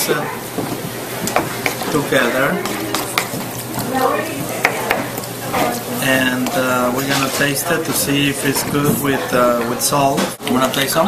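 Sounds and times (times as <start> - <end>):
spoon mixing wet food in bowl: 0.6 - 9.4.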